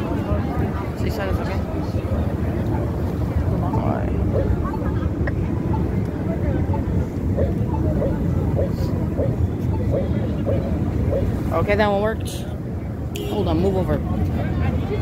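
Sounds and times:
city street traffic rumble: 0:00.0 - 0:15.0.

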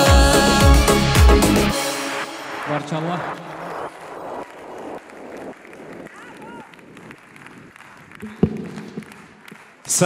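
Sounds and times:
audience clapping in unison: 0:01.8 - 0:10.0.

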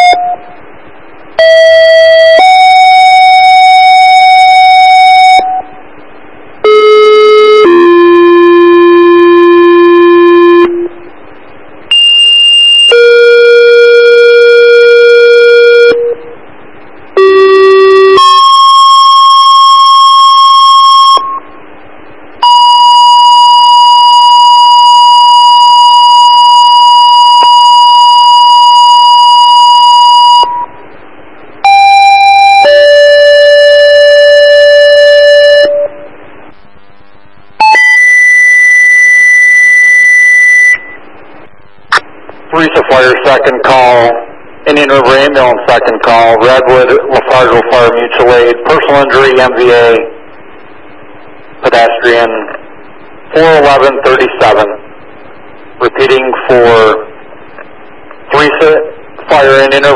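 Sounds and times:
two-tone radio paging tones: 0:00.0 - 0:00.6, 0:17.2 - 0:21.6, 0:22.4 - 0:30.8
long steady tone: 0:00.0 - 0:59.9
radio hiss: 0:40.9 - 0:59.9.

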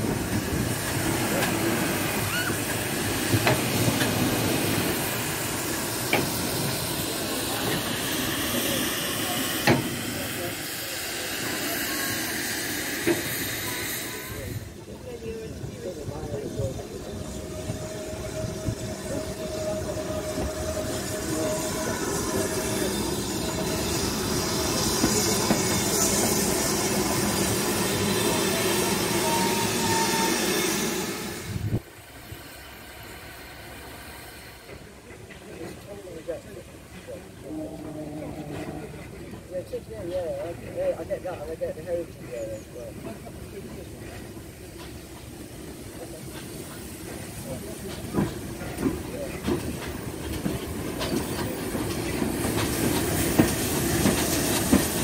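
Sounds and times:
hiss of escaping steam: 0:00.0 - 0:15.0, 0:15.6 - 0:35.9, 0:42.1 - 0:55.0
distant steam locomotive: 0:00.0 - 0:55.0.

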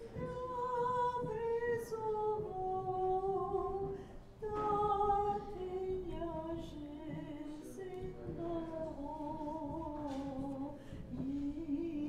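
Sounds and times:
unaccompanied liturgical chant: 0:00.0 - 0:12.0.

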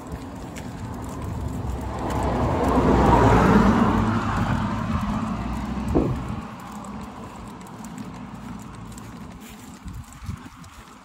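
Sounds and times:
car passing: 0:00.0 - 0:11.0.

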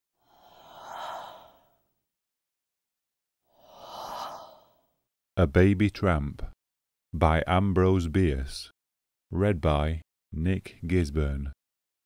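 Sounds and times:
breathy whoosh: 0:00.2 - 0:01.9, 0:03.5 - 0:04.9.

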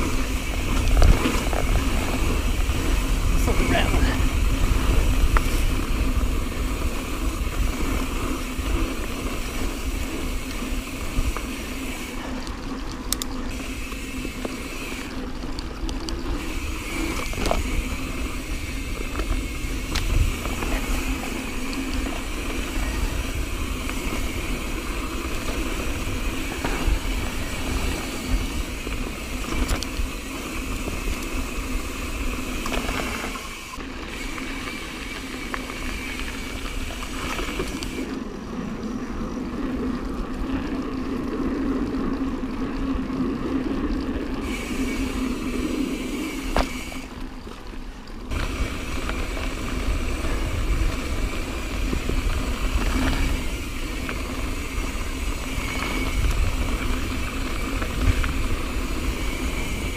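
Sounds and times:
wind on microphone: 0:00.0 - 0:12.2, 0:16.4 - 0:33.4, 0:48.3 - 0:59.9
bike rattling over bumps: 0:00.0 - 0:59.9
bike rolling on dirt trail: 0:00.0 - 0:59.9.

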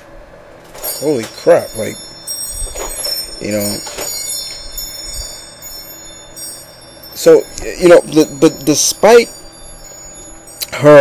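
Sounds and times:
faint high chime-like ringing: 0:00.7 - 0:11.0.

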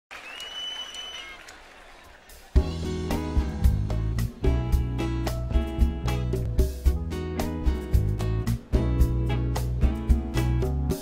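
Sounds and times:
shrill whistle: 0:00.1 - 0:01.6
audience applauding and cheering: 0:00.1 - 0:03.8.

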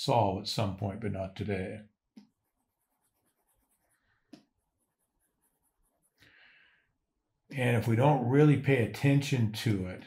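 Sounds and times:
stylus scratching on drawing tablet: 0:02.2 - 0:06.2.

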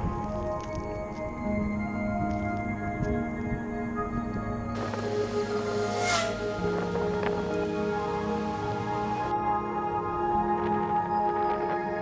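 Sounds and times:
music with sustained chords: 0:00.0 - 0:12.0
hissing swell: 0:04.8 - 0:09.3.

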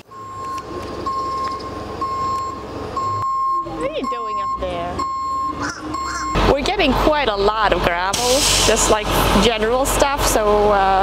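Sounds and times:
truck engine running: 0:00.0 - 0:11.0
reversing alarm beeping: 0:00.1 - 0:06.9.

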